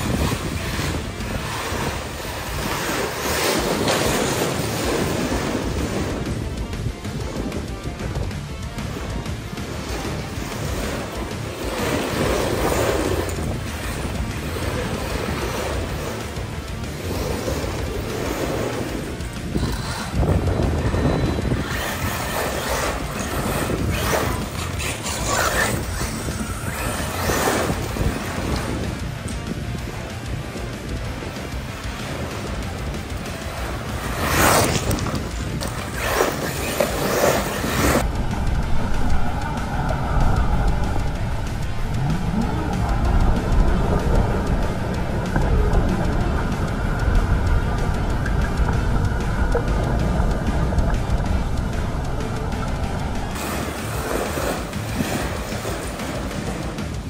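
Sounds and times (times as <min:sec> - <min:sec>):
electric motor whining: 0:00.0 - 0:56.6
background music: 0:00.0 - 0:57.0
tyres scrabbling on gravel: 0:07.9 - 0:38.1.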